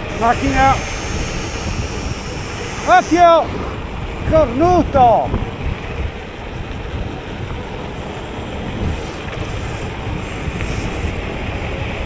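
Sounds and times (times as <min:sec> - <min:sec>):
bike tyres on asphalt: 0:00.0 - 0:12.0
wind on microphone: 0:00.0 - 0:12.0.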